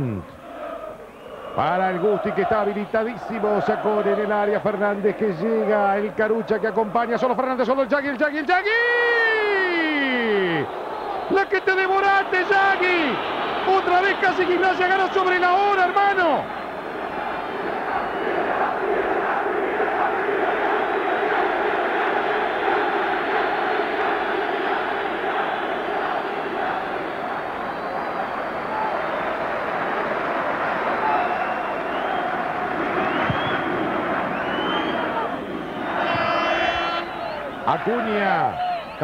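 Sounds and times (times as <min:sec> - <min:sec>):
stadium crowd singing and chanting: 0:00.0 - 0:06.7, 0:10.0 - 0:38.6.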